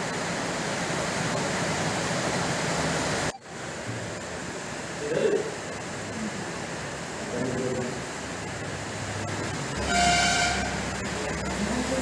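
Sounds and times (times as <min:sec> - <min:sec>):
low background noise: 0:00.0 - 0:12.0
short horn-like tone: 0:09.8 - 0:10.9.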